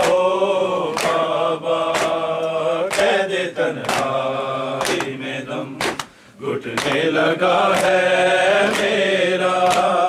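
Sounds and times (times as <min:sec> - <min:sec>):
men chanting in unison: 0:00.0 - 0:10.0
hands striking chests: 0:05.8 - 0:06.1.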